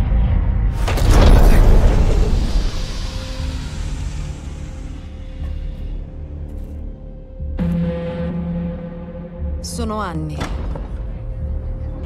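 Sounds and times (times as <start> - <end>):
low sustained drone: 1.1 - 9.9.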